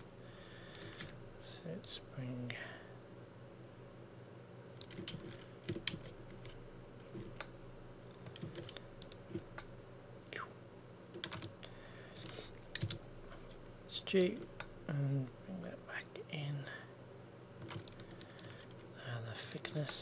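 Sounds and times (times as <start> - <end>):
steady low hum: 0.0 - 20.0
computer keyboard and mouse clicks: 0.7 - 1.2, 4.8 - 9.7, 11.1 - 11.6, 12.2 - 13.0, 17.6 - 18.8.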